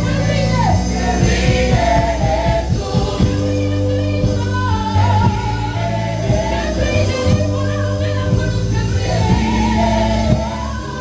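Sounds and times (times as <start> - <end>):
band with bass and drums: 0.0 - 11.0
women singing gospel: 0.0 - 11.0.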